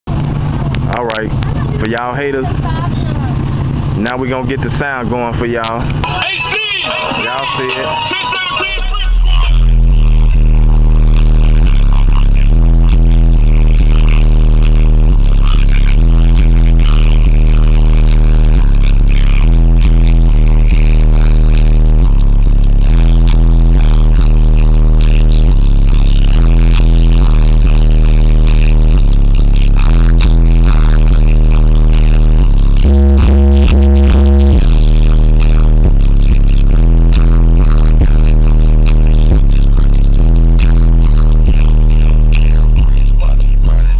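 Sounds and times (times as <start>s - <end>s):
bass-heavy electronic music: 0.0s - 43.9s.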